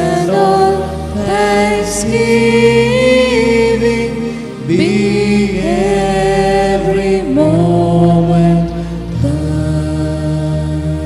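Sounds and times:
slow chant-like singing: 0:00.0 - 0:11.0
sustained tones: 0:00.0 - 0:11.0.

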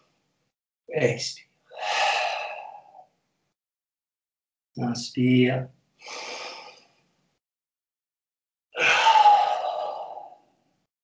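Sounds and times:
man exhaling loudly: 0:08.8 - 0:10.4.

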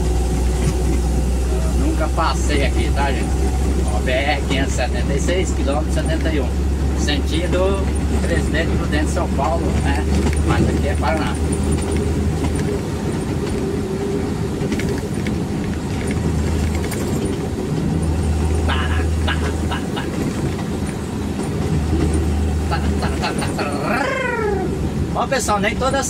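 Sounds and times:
vehicle engine and road drone: 0:00.0 - 0:26.0.

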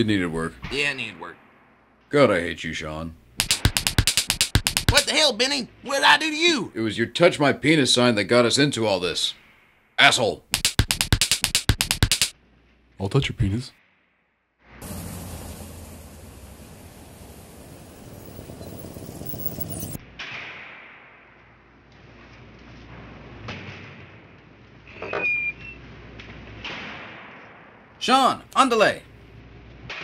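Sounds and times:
rapid sharp hits: 0:03.4 - 0:05.3, 0:10.4 - 0:12.3
door squeak: 0:24.9 - 0:25.8.

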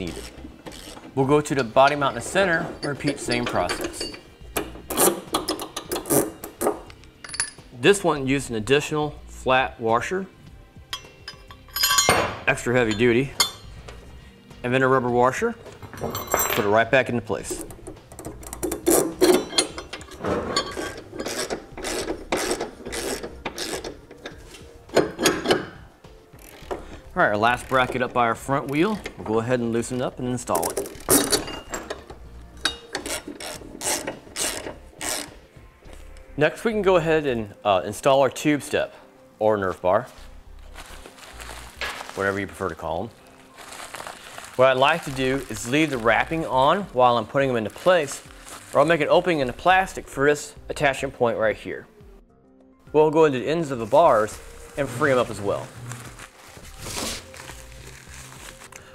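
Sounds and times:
metal bolt and washers clinking: 0:00.0 - 0:07.8, 0:10.9 - 0:14.1, 0:15.6 - 0:36.3
ratchet wrench clicking: 0:00.1 - 0:01.0, 0:17.6 - 0:25.7, 0:30.7 - 0:35.4.

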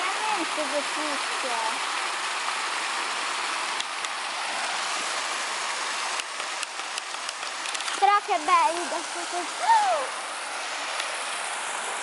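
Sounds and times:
running water: 0:00.0 - 0:12.0
sharp clicks and taps: 0:06.2 - 0:08.0.

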